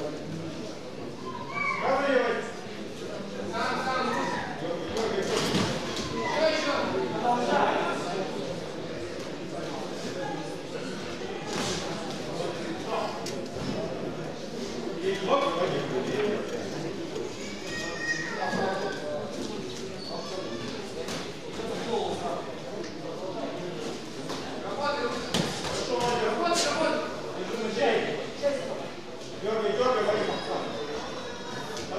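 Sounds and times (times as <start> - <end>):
voices shouting in echoing hall: 1.1 - 2.7, 3.4 - 4.7, 5.9 - 8.3, 17.2 - 20.8.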